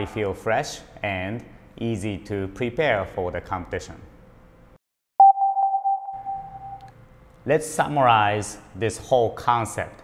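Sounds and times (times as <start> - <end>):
steady electronic tone: 5.2 - 7.0.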